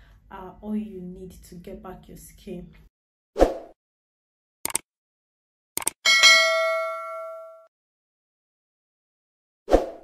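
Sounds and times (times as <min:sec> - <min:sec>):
bright bell dings: 0:06.1 - 0:07.7.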